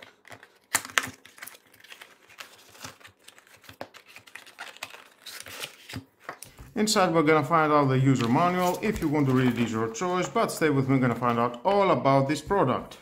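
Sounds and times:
card and paper packaging rustling: 0:00.0 - 0:06.8, 0:07.8 - 0:11.5.

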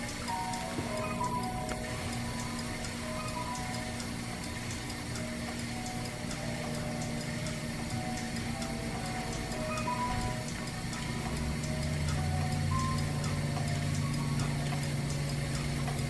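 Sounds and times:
faint regular ticking: 0:00.0 - 0:16.0
pipe organ notes: 0:00.0 - 0:16.0.

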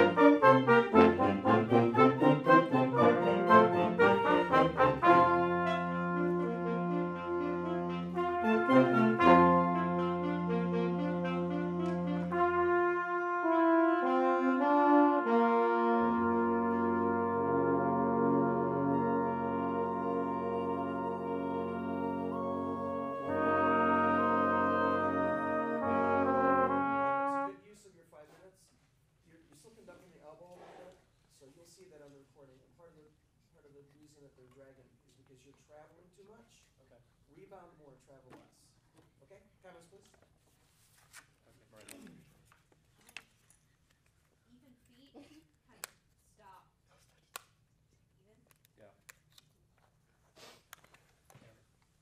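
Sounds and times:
wind band playing chords: 0:00.0 - 0:27.6.

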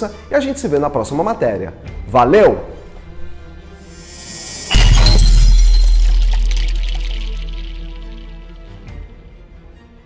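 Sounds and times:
glassy crackling shatter: 0:03.9 - 0:08.6.

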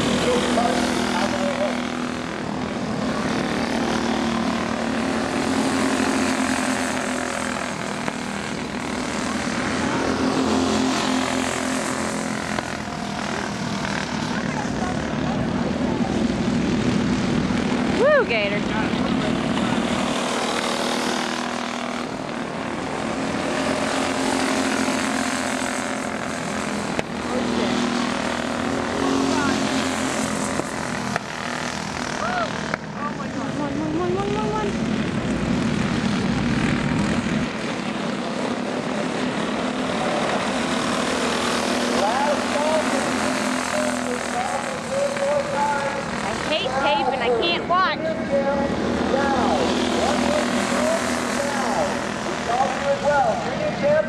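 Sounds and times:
go-kart engines buzzing: 0:00.0 - 0:54.0.

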